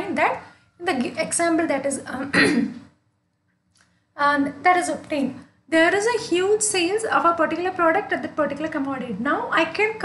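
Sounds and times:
woman coughing: 2.3 - 2.9.

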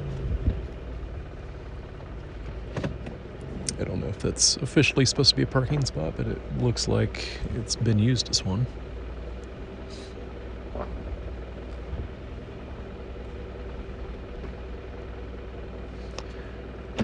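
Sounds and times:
low engine and road rumble: 0.0 - 17.0
faint vehicle knocks: 2.7 - 3.2.

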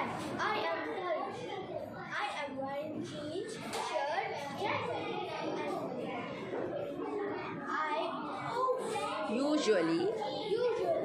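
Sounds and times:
boy talking: 0.0 - 11.0.

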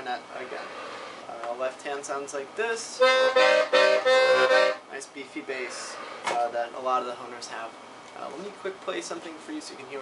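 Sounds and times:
accordion bass and chord strokes: 3.0 - 4.8.

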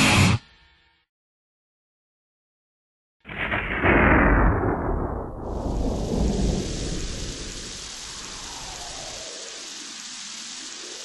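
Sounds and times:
thunder rumbling: 3.3 - 9.8
rain hiss: 5.4 - 11.0.

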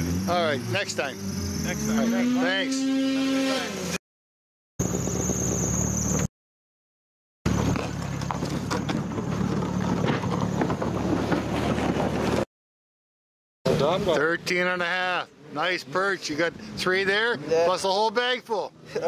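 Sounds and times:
vehicle engine running: 4.8 - 6.3, 7.5 - 12.4.

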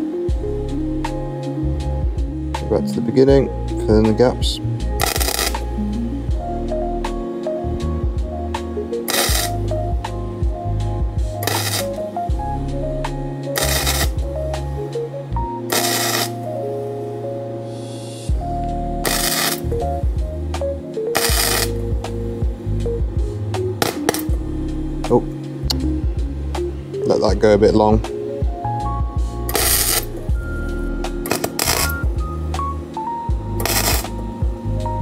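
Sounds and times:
background music: 0.0 - 35.0
welding arc crackling: 4.9 - 5.8, 9.0 - 9.8, 11.2 - 12.4, 13.1 - 14.8, 15.7 - 16.7, 18.2 - 24.4, 29.5 - 32.7, 33.4 - 34.5.

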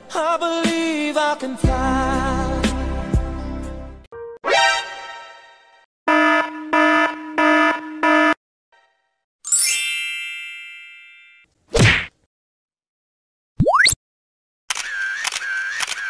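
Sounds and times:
pitched electronic beeps: 6.2 - 8.4
bright ring: 9.5 - 11.4
short hard whack: 11.7 - 12.1.

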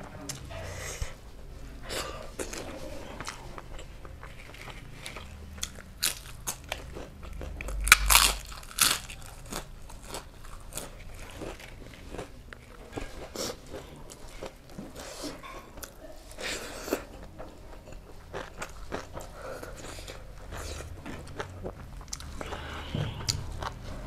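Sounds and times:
chewing with wet mouth clicks: 1.9 - 23.8.

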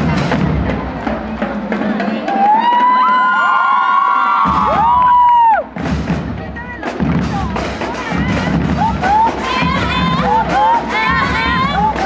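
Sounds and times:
marching band drums: 0.0 - 3.1, 4.4 - 12.0.

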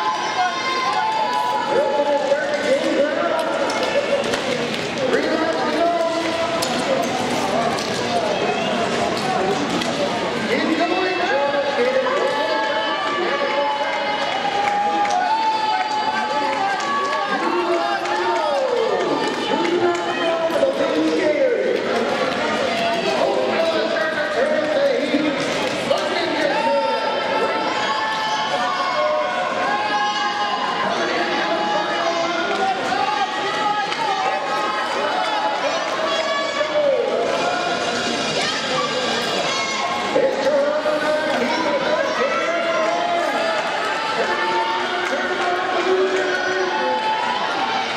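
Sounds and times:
crowd shouting and cheering: 0.0 - 47.9.

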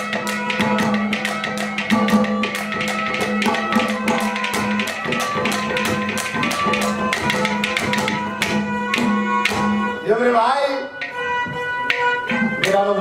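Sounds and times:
hand drum strokes: 0.0 - 9.9
harmonium melody: 0.0 - 13.0.

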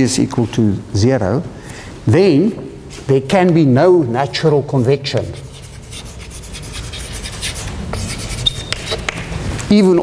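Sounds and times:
chalk scratching on chalkboard: 4.7 - 10.0.

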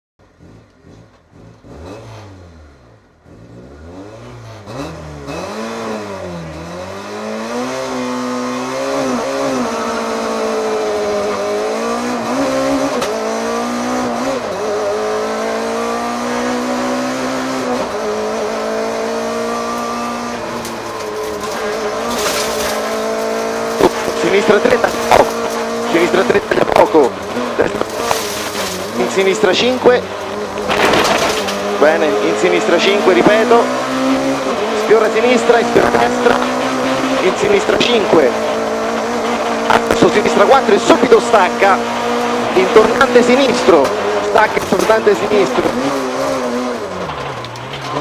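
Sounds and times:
rally car engine revving: 0.2 - 48.0
co-driver calling pace notes: 17.2 - 30.8, 31.6 - 46.9.

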